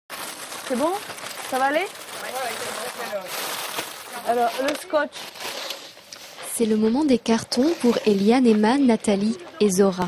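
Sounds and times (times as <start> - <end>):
plastic bags and boxes rustling: 0.1 - 10.0
women talking: 6.5 - 10.0.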